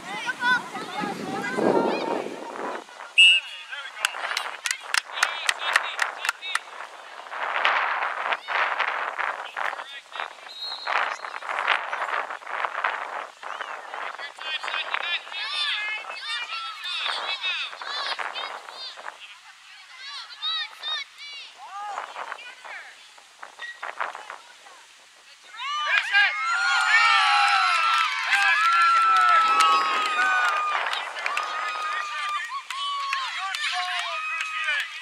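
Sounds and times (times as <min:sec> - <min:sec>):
crowd cheering and shouting: 0:25.5 - 0:35.0.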